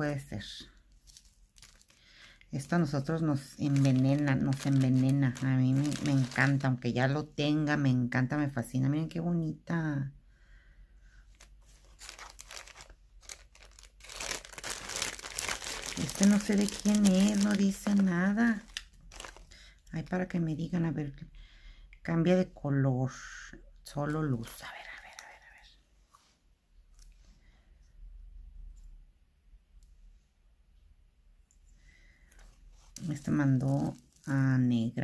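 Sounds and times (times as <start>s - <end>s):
plastic bag crinkling: 0.0s - 6.8s, 11.3s - 20.1s, 32.3s - 35.0s
woman whispering: 23.1s - 25.9s.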